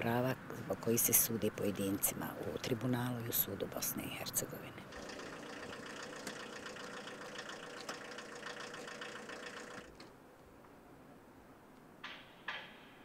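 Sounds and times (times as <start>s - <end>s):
steady mechanical hum: 0.0s - 11.6s.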